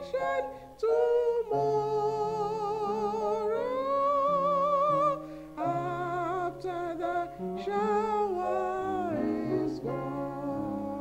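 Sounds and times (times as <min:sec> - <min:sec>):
woman singing a hymn: 0:00.0 - 0:11.0.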